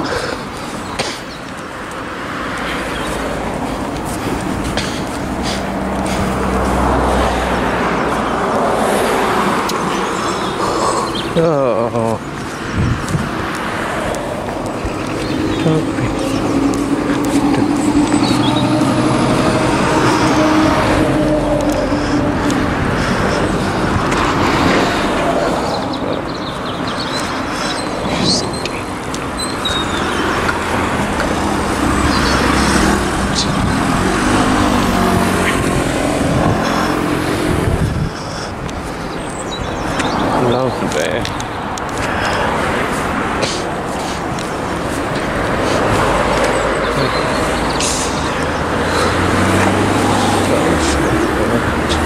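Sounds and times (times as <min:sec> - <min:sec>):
road traffic rushing past: 0:00.0 - 0:52.0
vehicle engine hum: 0:00.0 - 0:52.0.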